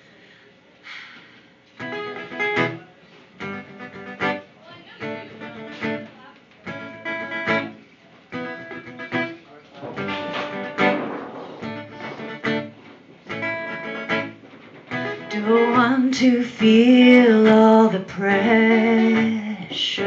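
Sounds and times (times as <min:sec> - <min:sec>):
acoustic guitar strumming: 0:01.8 - 0:02.8, 0:03.4 - 0:20.0.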